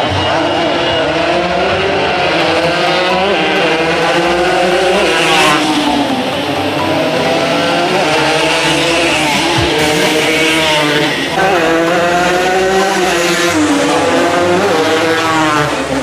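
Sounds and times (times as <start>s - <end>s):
racing motorcycles accelerating: 0.0s - 16.0s.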